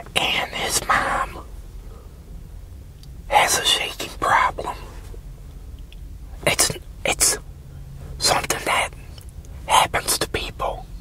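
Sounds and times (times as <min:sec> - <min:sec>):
man whispering: 0:00.0 - 0:01.5, 0:03.3 - 0:05.1, 0:06.3 - 0:07.4, 0:08.2 - 0:11.0
faint low hum: 0:00.0 - 0:11.0.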